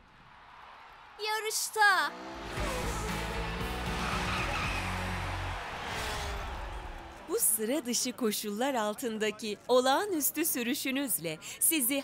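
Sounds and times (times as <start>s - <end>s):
cartoon car speeding off: 2.1s - 7.2s
tyre skid: 2.5s - 7.2s
music: 2.6s - 5.6s.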